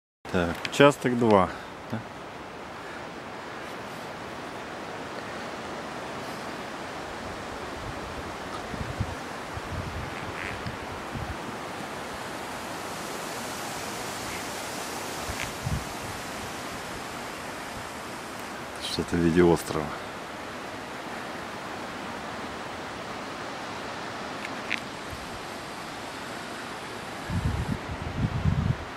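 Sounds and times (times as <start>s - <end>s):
wind on microphone: 6.4s - 18.7s, 24.6s - 28.9s.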